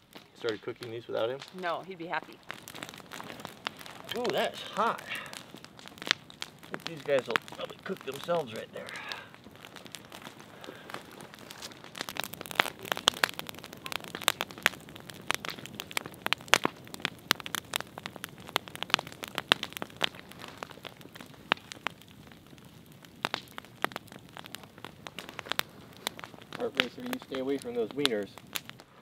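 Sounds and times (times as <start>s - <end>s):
branches crackling in fire: 0.0s - 29.0s
faint fire hiss: 0.0s - 29.0s
sharp pops and snaps: 0.0s - 29.0s.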